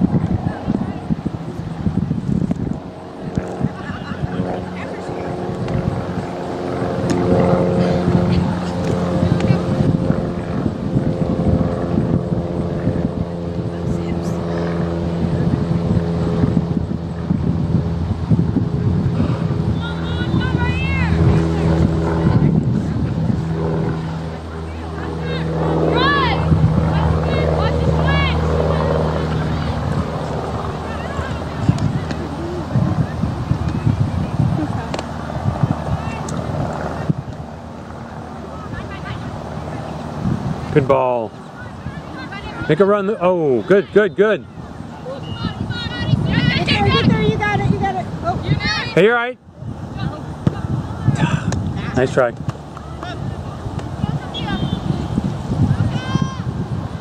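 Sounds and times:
engine drone: 0:00.0 - 0:57.0
open-air field noise: 0:00.0 - 0:57.0
distant shouted calls: 0:19.7 - 0:21.7, 0:41.3 - 0:47.4, 0:52.7 - 0:56.5.

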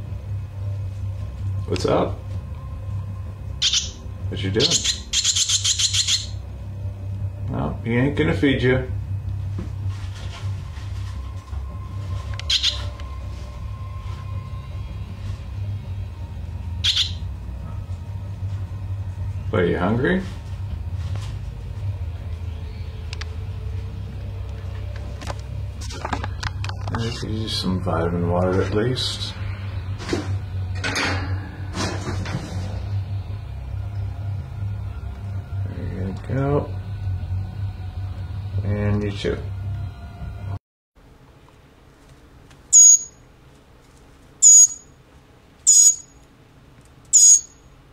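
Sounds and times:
steady low hum: 0:00.0 - 0:47.9
fledgling bird begging calls: 0:03.6 - 0:04.0, 0:04.6 - 0:06.4, 0:12.5 - 0:12.8, 0:16.8 - 0:17.2, 0:45.7 - 0:46.0, 0:47.2 - 0:47.5.

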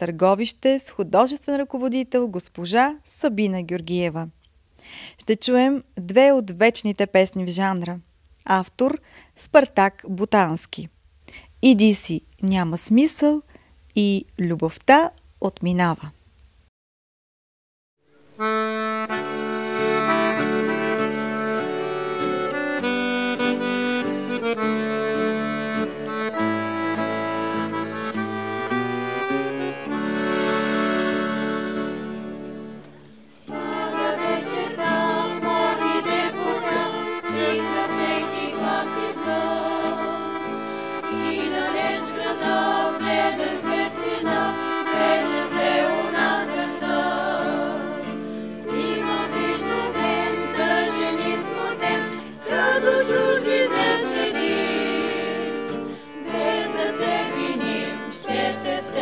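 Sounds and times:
accordion playing: 0:18.2 - 0:59.0
acoustic guitar accompanying: 0:18.3 - 0:59.0.

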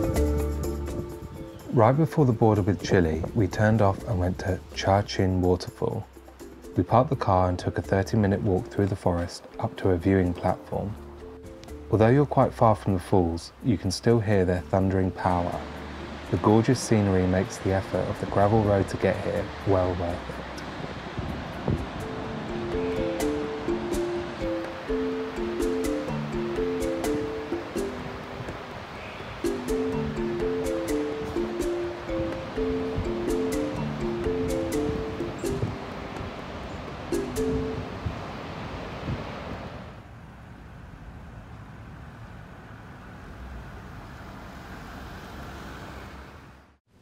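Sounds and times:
light background music melody: 0:00.0 - 0:39.2
distant waterfall roar: 0:00.0 - 0:46.7.

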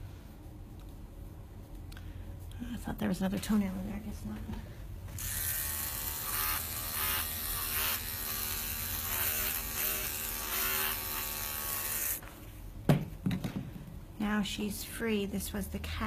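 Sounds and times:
electric clippers running: 0:05.1 - 0:12.2.

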